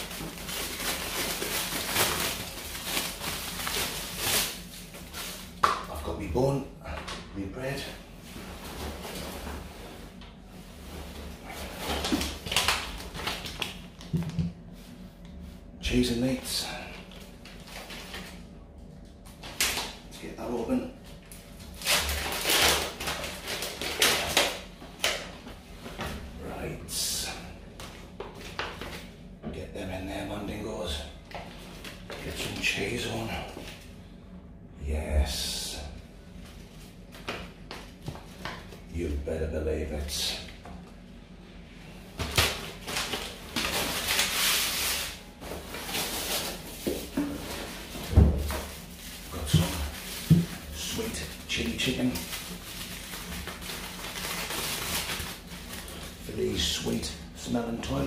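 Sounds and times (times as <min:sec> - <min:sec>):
plastic packaging crinkling: 0:00.0 - 0:06.0, 0:10.8 - 0:14.2, 0:17.1 - 0:18.4, 0:21.5 - 0:25.3, 0:42.2 - 0:58.0.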